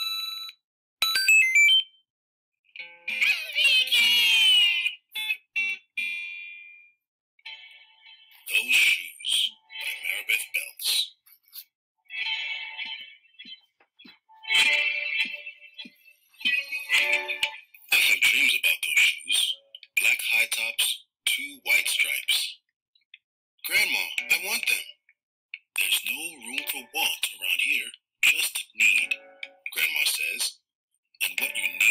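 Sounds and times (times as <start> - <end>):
recorded voice reading aloud: 3.1 - 5.5, 8.3 - 11.7, 15.9 - 22.6, 23.6 - 25.0, 25.6 - 30.6, 31.2 - 31.9.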